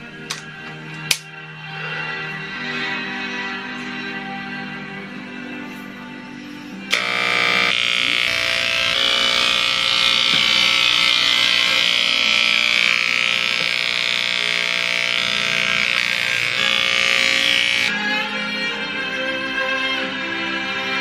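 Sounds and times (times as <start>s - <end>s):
electric hair clippers buzzing: 6.9s - 17.9s.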